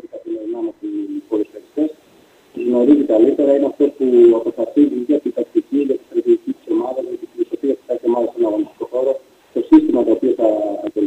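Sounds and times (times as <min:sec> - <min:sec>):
muffled man's voice: 0:00.0 - 0:11.0.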